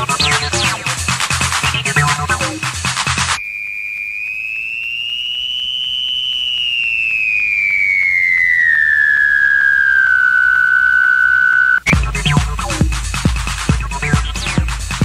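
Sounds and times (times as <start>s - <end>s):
house dance music: 0.0s - 3.4s, 11.9s - 15.0s
gliding electronic tone: 3.4s - 11.9s.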